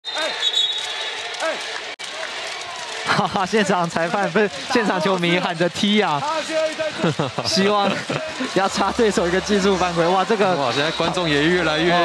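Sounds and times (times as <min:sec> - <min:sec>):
crowd hum in large hall: 0:00.0 - 0:12.0
fans shouting: 0:00.0 - 0:12.0.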